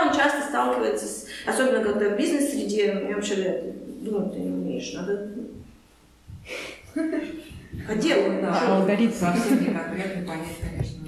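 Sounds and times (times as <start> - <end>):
person breathing: 6.3 - 7.7
person talking: 7.1 - 11.0.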